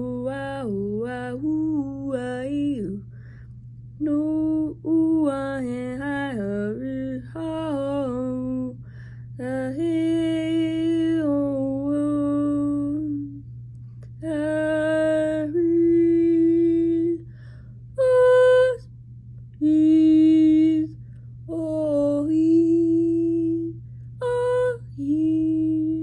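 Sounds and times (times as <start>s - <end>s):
woman singing unaccompanied: 0.0s - 3.1s, 4.0s - 13.5s, 14.1s - 17.3s, 17.9s - 18.9s, 19.5s - 26.0s
steady low hum: 0.0s - 26.0s.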